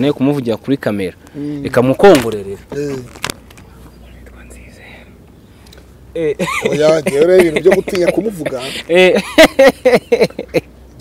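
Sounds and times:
faint whispering voice: 0:03.9 - 0:05.2.

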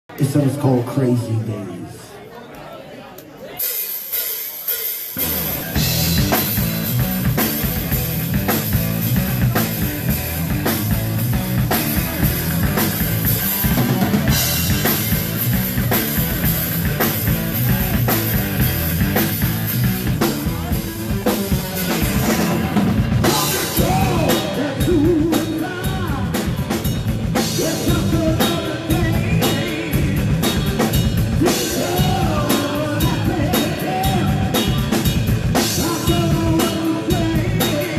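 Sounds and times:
drum kit: 0:03.6 - 0:37.9
heavy metal band playing live: 0:03.6 - 0:37.9
bass guitar: 0:05.2 - 0:37.9
electric guitar: 0:05.2 - 0:37.9.

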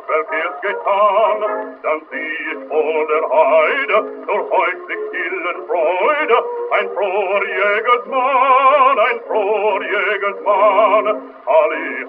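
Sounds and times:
gramophone song accompaniment: 0:00.0 - 0:12.0
man singing with vibrato: 0:00.0 - 0:12.0.

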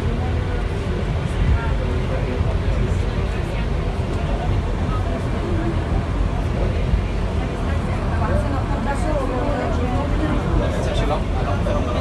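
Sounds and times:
lift low rumble: 0:00.0 - 0:12.0
people talking indistinctly: 0:00.0 - 0:12.0.

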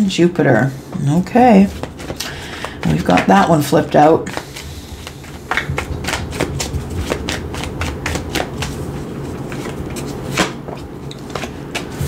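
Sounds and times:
cards being shuffled: 0:01.6 - 0:12.0.

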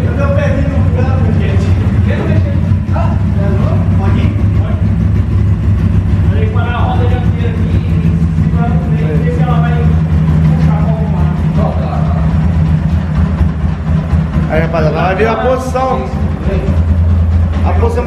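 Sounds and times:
motorcycle engine idling: 0:00.0 - 0:18.0.

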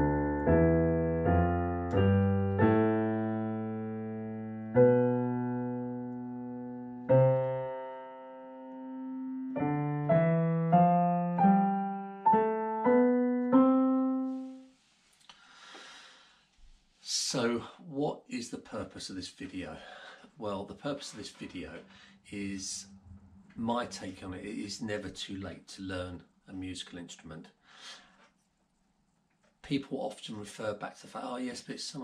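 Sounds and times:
digital piano scale exercise: 0:00.0 - 0:14.7.

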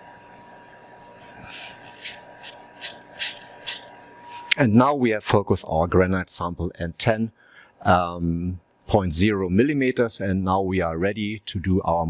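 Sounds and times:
short high electronic beeps: 0:02.0 - 0:04.4.

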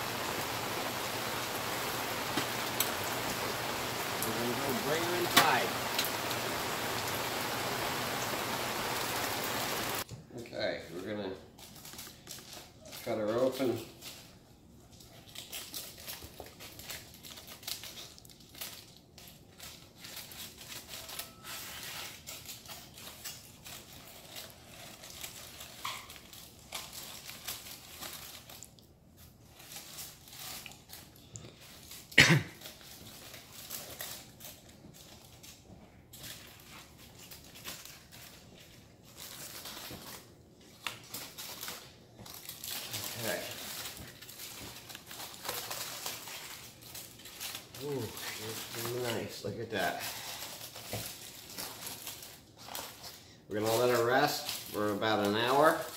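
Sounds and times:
aluminium foil crinkling: 0:00.0 - 0:10.1, 0:10.8 - 0:55.9
scissors snipping foil: 0:03.9 - 0:06.2, 0:15.1 - 0:28.8, 0:39.1 - 0:53.0.

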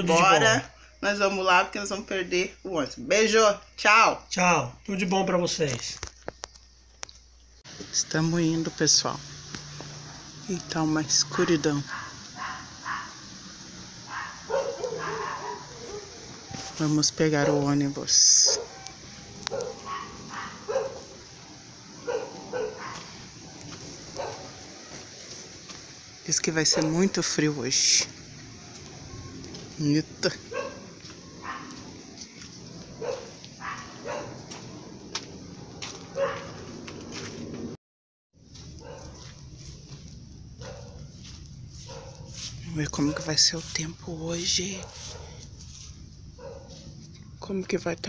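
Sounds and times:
dog barking: 0:11.1 - 0:13.4, 0:14.1 - 0:16.8, 0:17.4 - 0:21.2, 0:21.9 - 0:25.0, 0:26.6 - 0:27.2, 0:30.4 - 0:32.0, 0:32.9 - 0:34.5, 0:35.6 - 0:36.7, 0:38.8 - 0:39.4, 0:40.6 - 0:41.2, 0:41.8 - 0:42.4, 0:43.0 - 0:43.4, 0:44.8 - 0:45.5, 0:46.4 - 0:47.0
dog whining: 0:14.2 - 0:16.8.

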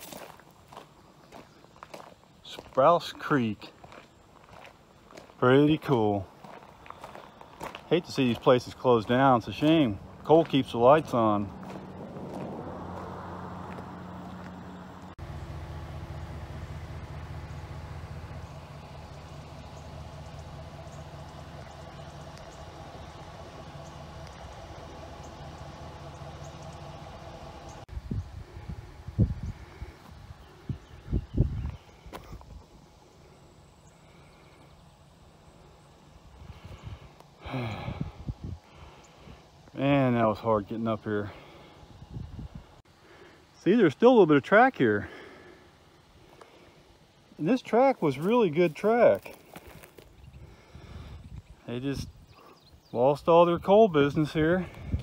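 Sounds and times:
low mechanical hum: 0:06.2 - 0:39.8, 0:45.1 - 0:55.0.

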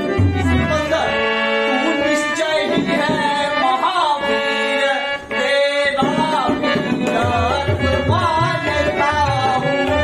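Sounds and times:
tabla: 0:00.0 - 0:10.0
young man singing: 0:00.0 - 0:10.0.

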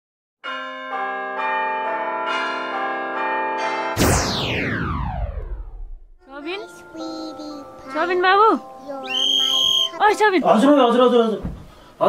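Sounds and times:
bell-like chimes: 0:00.4 - 0:04.0.

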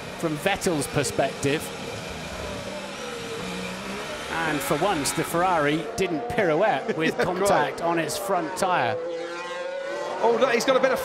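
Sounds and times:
racing car engine: 0:00.0 - 0:11.0.

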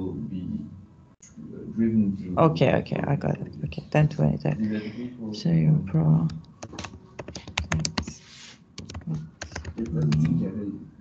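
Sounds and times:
computer keyboard typing: 0:06.6 - 0:08.2, 0:08.8 - 0:10.4.

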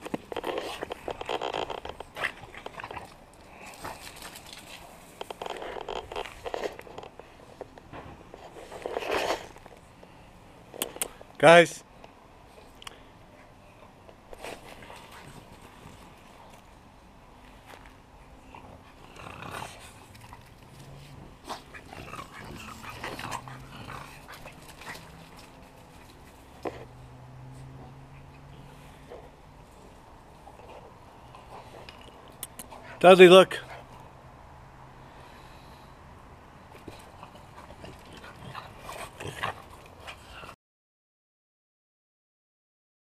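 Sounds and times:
dogs growling and grunting: 0:18.6 - 0:27.0, 0:36.8 - 0:40.6
dogs making short sounds: 0:31.5 - 0:33.0.

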